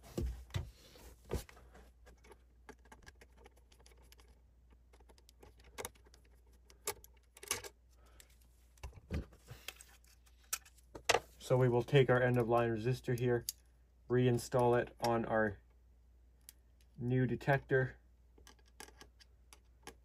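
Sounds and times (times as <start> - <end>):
small clicks and knocks: 2.0 - 11.3, 18.4 - 20.0.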